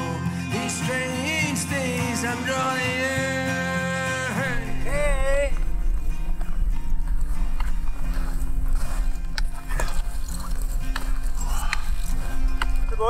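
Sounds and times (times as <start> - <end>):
person singing: 0.0 - 5.6
steady low rumble: 4.2 - 13.0
footsteps in snow: 4.4 - 13.0.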